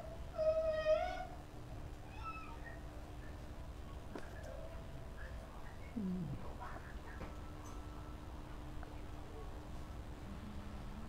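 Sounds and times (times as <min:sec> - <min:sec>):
faint steady hum: 0:00.0 - 0:11.0
animal crying: 0:02.0 - 0:02.8.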